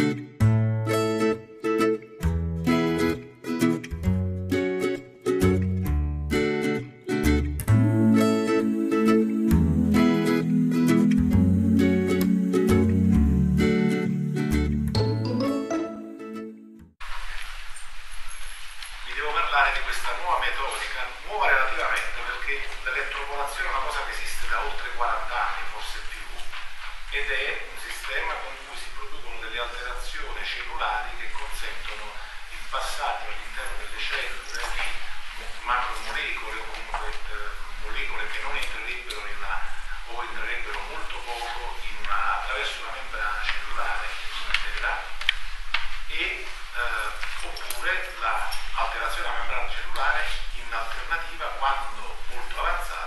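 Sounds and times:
man lecturing: 19.1s - 26.3s, 27.2s - 35.0s, 35.6s - 45.2s, 46.1s - 53.0s
man talking over sound system: 19.1s - 26.3s, 27.2s - 34.9s, 35.6s - 45.2s, 46.1s - 53.0s.

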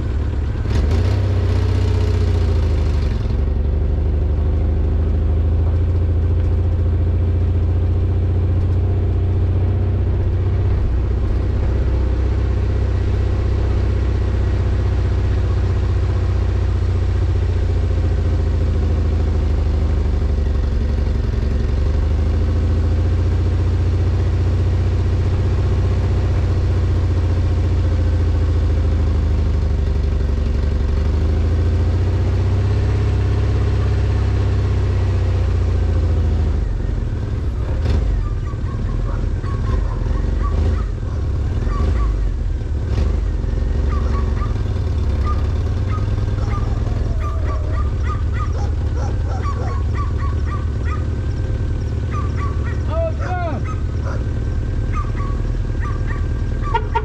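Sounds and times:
car engine and road rumble: 0.0s - 57.0s.

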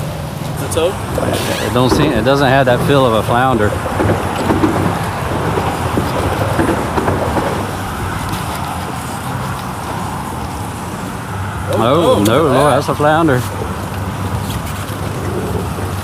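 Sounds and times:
wind and water rushing: 0.0s - 16.0s.

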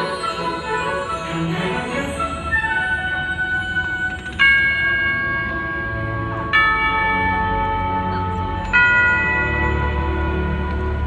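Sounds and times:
orchestral music: 0.0s - 11.0s
clock-tower bell striking: 4.1s - 11.0s.

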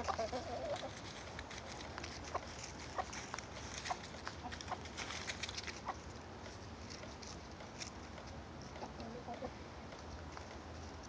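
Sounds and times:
hens clucking softly: 0.0s - 1.1s, 8.7s - 10.0s.

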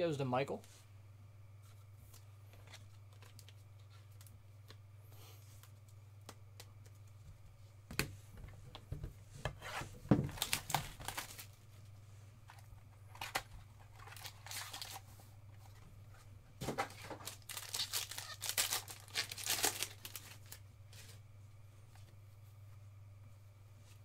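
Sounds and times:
low steady hum: 0.0s - 24.0s
foil wrapper tearing and crinkling: 10.3s - 11.5s, 13.1s - 15.0s, 16.9s - 20.6s.

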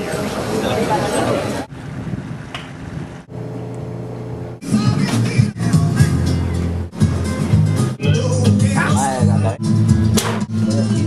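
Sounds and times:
steady low hum: 3.0s - 7.2s
music: 4.6s - 11.0s.

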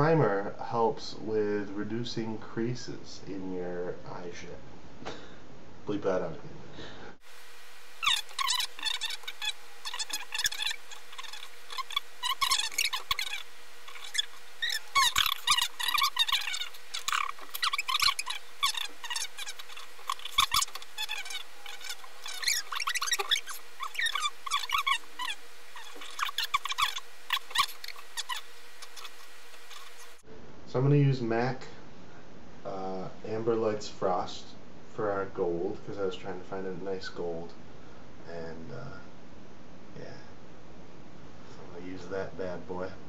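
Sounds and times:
faint steady hum: 0.0s - 43.0s
sped-up squeaky chatter and laughter: 8.0s - 30.2s.

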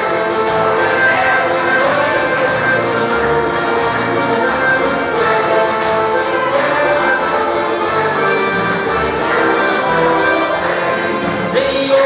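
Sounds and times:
keyboard playing gospel chorus: 0.0s - 12.0s.

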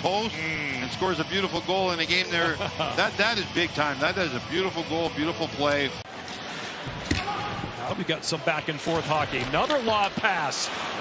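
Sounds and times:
hockey stick hitting puck: 9.0s - 10.4s.

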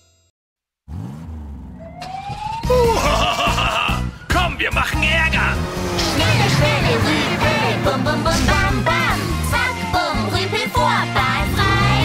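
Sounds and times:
cartoon car engine revving: 0.9s - 4.0s, 4.8s - 12.0s
voice laughing: 2.7s - 4.0s.

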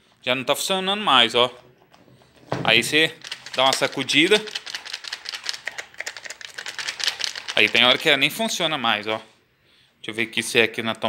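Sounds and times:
jigsaw rattling when shaken: 3.1s - 8.5s.

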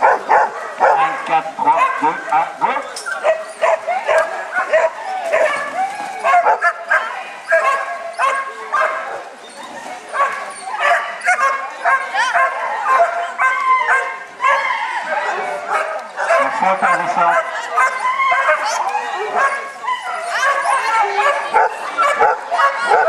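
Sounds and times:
dog barking: 0.0s - 2.2s, 3.2s - 9.2s, 10.1s - 14.7s, 15.7s - 18.8s, 20.3s - 23.0s.

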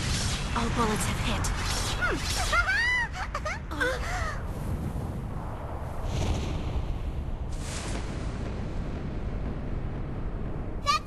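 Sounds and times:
person laughing: 2.4s - 4.1s
low explosion rumble: 4.4s - 11.0s.

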